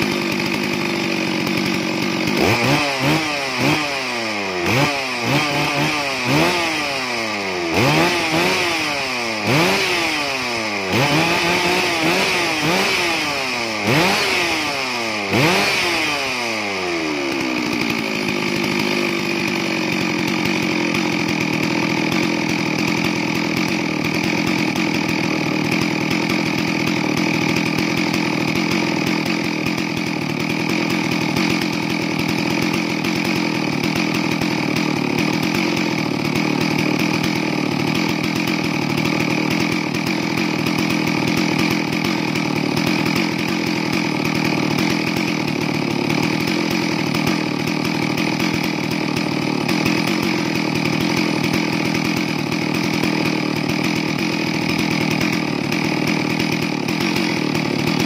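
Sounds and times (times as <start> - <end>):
chainsaw engine revving: 0.0 - 58.0
chainsaw idling: 0.0 - 58.0.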